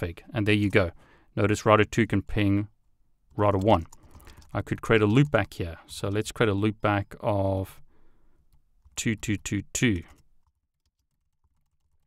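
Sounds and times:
faint keyboard typing: 0:00.5 - 0:01.0, 0:03.3 - 0:07.1, 0:07.8 - 0:12.0.

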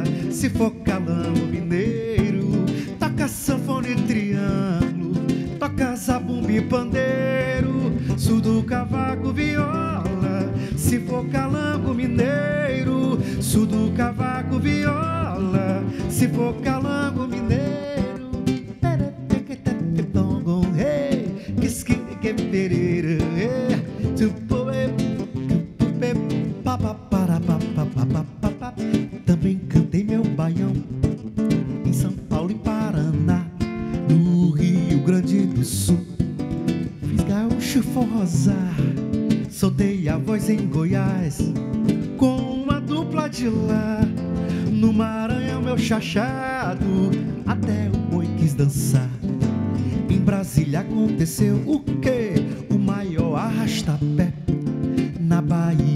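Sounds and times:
two acoustic guitars playing: 0:00.0 - 0:55.9.

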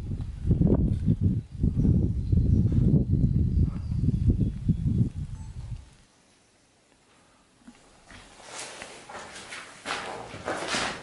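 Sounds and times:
wind buffeting microphone: 0:00.0 - 0:06.0.

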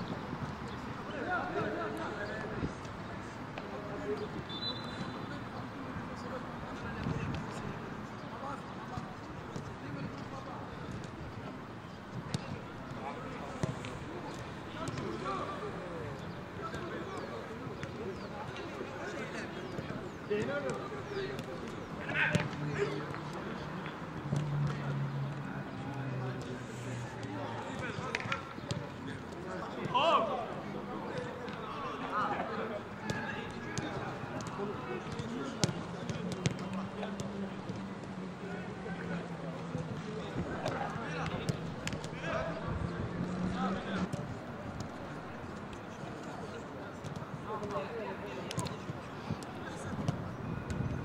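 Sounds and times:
players' voices: 0:00.1 - 0:51.0.

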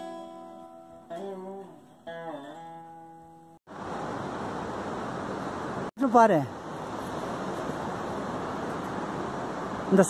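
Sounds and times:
veena note: 0:00.0 - 0:03.6
fast river rushing over rocks: 0:03.7 - 0:10.0.

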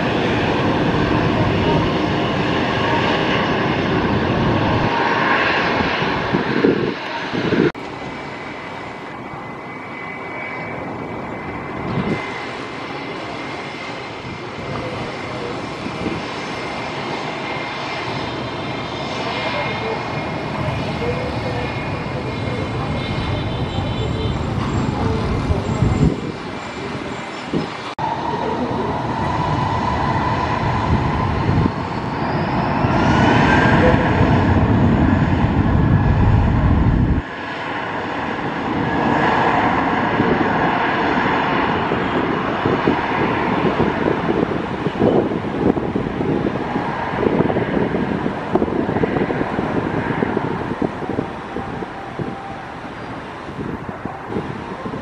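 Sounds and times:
jet engines spooling up: 0:24.4 - 0:55.0.

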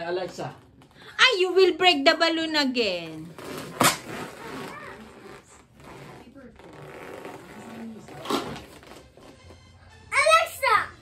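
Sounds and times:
balloon being handled: 0:03.2 - 0:09.7.

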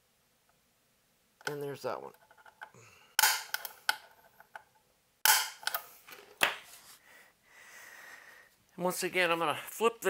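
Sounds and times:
center punch snapping on metal: 0:05.3 - 0:05.8.

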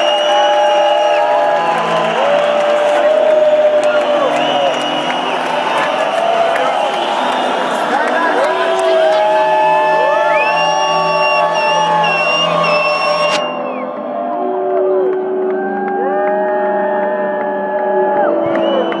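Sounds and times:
electronic dance music: 0:00.0 - 0:15.5
crowd whooping: 0:00.0 - 0:19.0.

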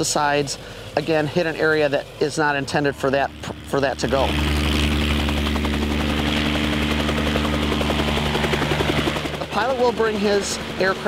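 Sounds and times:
helicopter engine drone: 0:00.0 - 0:11.0
helicopter rotor chop: 0:00.0 - 0:11.0.

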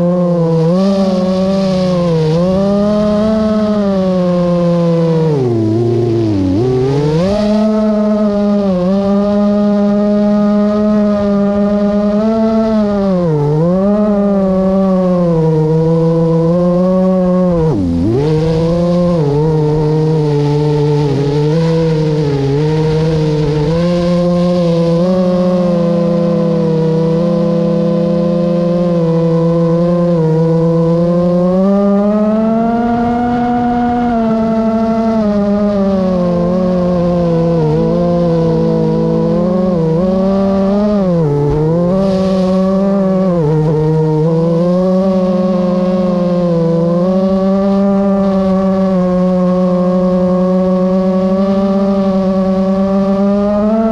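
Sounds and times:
drone propellers whining: 0:00.0 - 0:53.9.

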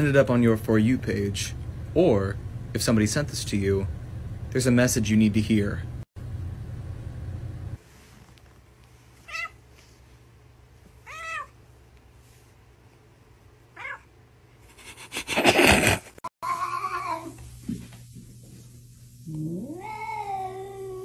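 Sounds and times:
cat meowing: 0:09.2 - 0:09.6, 0:11.0 - 0:11.6, 0:13.8 - 0:14.1, 0:19.6 - 0:21.0.

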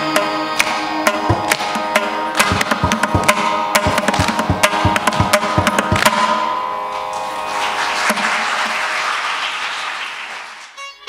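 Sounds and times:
mridangam drum stroke: 0:00.0 - 0:07.3, 0:08.0 - 0:08.7
audience applause: 0:07.0 - 0:10.8.

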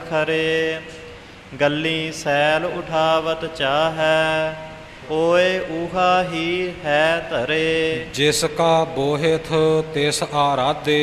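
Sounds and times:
man singing melismatic chant: 0:00.0 - 0:11.0.

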